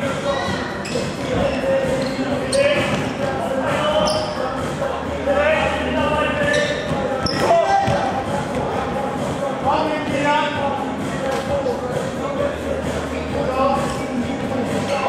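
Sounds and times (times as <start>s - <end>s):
short high squeaks: 0.3s - 2.9s, 3.9s - 4.4s, 6.4s - 7.7s.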